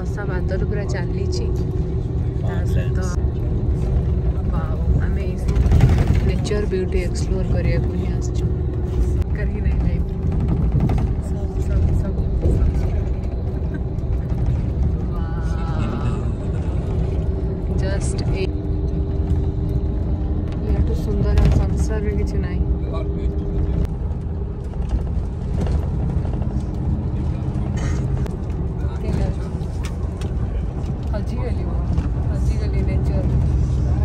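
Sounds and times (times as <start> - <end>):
vehicle cabin rumble: 0.0 - 34.0.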